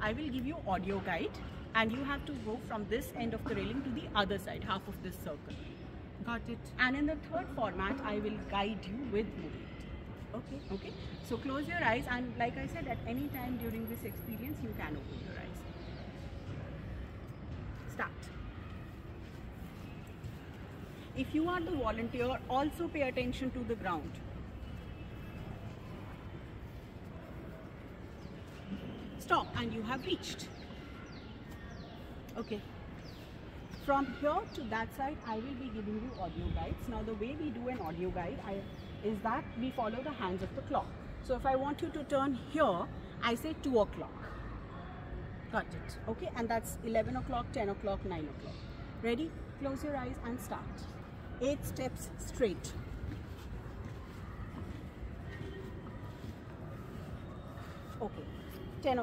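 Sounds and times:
low outdoor background noise: 0.0s - 59.0s.

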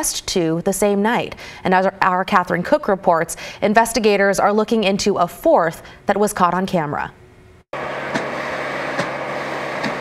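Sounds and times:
fire truck engine running: 7.8s - 10.0s.

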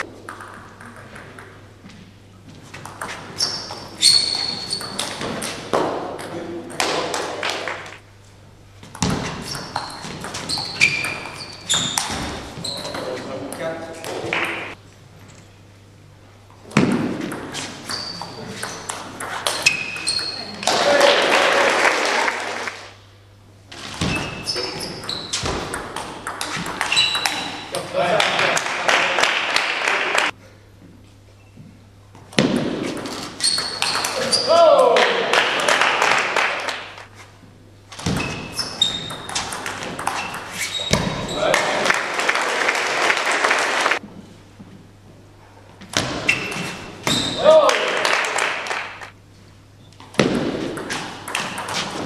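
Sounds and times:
shoes squeaking on floor: 1.8s - 5.7s, 9.0s - 13.4s, 17.5s - 20.7s, 23.8s - 27.8s, 31.2s - 31.8s, 33.0s - 34.6s, 37.9s - 41.6s, 46.0s - 47.5s
spectators applauding and shouting: 20.8s - 22.8s, 41.6s - 44.0s.

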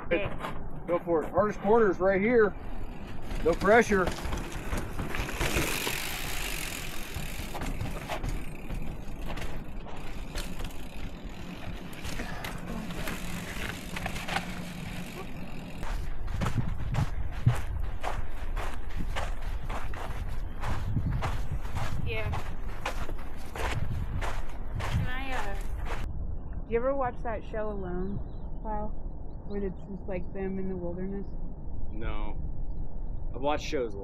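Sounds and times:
footsteps on gritty trail: 0.2s - 26.1s
bike tyres crunching over rock: 2.6s - 16.6s.

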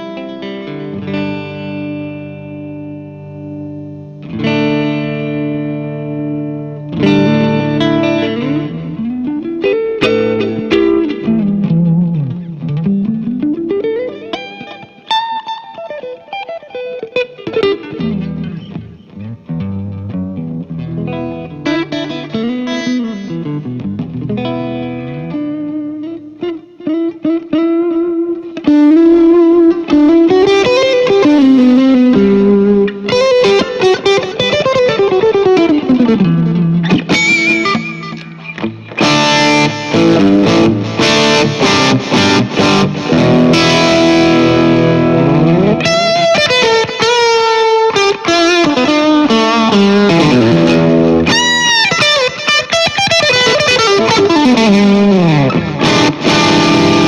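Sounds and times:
clean electric guitar playing: 0.0s - 57.0s.

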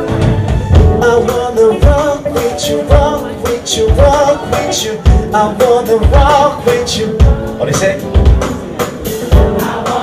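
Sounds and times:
band with regular drum beat: 0.0s - 10.0s
person singing a pop song: 0.7s - 10.0s.

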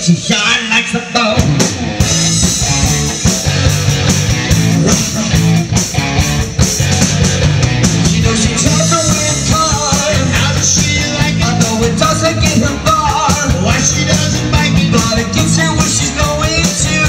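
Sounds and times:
rock band playing: 0.0s - 17.0s.

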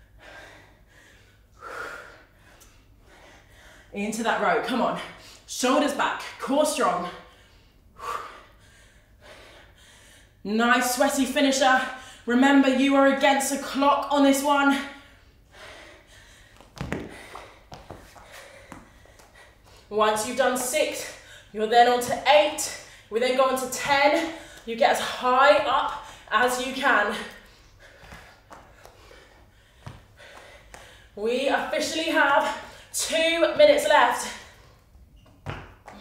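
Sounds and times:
woman breathing heavily: 0.0s - 5.5s, 6.3s - 10.4s, 14.5s - 35.2s
movement on a mat: 16.5s - 19.9s.

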